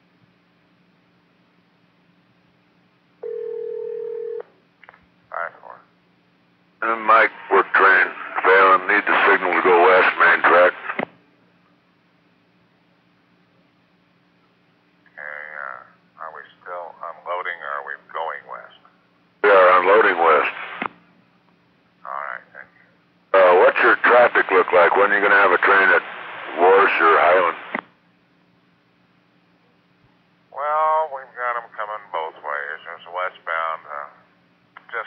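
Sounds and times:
faint low steady hum: 0.0s - 35.0s
radio voice transmissions: 6.8s - 11.1s, 15.1s - 20.9s, 23.4s - 27.8s, 30.6s - 34.2s, 34.8s - 35.0s.

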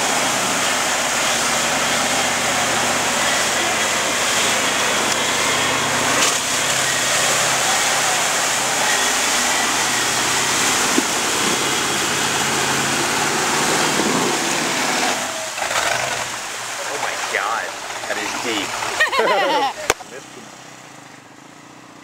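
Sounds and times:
truck engine running: 0.0s - 22.0s.

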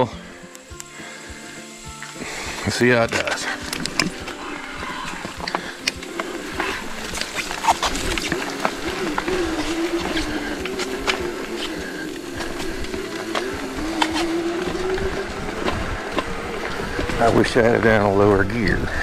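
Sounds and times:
electric motor whining: 0.0s - 18.8s.

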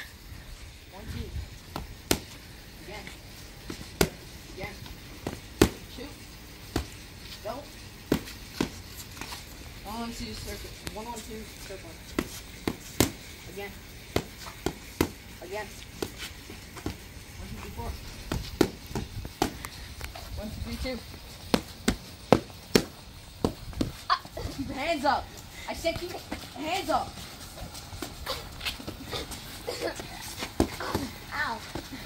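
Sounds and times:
boxing gloves smacking mitts: 1.7s - 2.4s, 3.6s - 4.2s, 4.8s - 6.0s, 8.0s - 9.4s, 12.1s - 13.4s, 14.0s - 20.2s, 21.4s - 24.1s
sneakers shuffling on concrete: 6.6s - 32.0s.

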